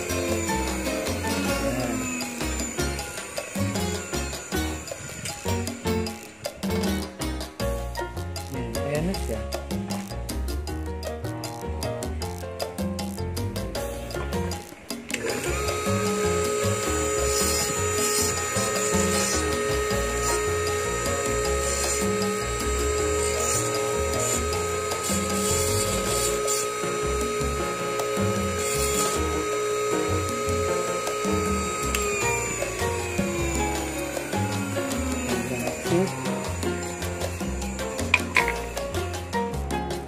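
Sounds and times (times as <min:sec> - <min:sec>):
bench lathe whining: 0:00.0 - 0:07.1, 0:14.8 - 0:39.7
background music with a beat: 0:00.0 - 0:15.3, 0:29.4 - 0:40.0
stone bur grinding teeth: 0:14.5 - 0:39.4.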